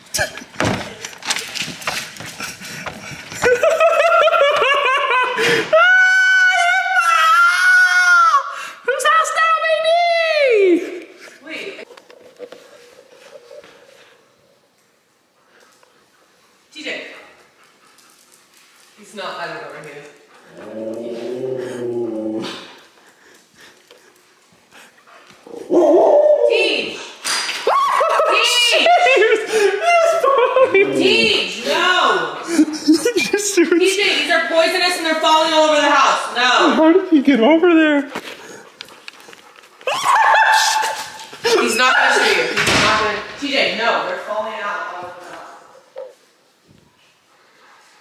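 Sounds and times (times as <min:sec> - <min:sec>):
person laughing: 0:03.3 - 0:05.7, 0:28.0 - 0:31.3, 0:32.4 - 0:33.9
dog grumbling: 0:20.4 - 0:22.8
dog barking or yowling: 0:25.5 - 0:26.8.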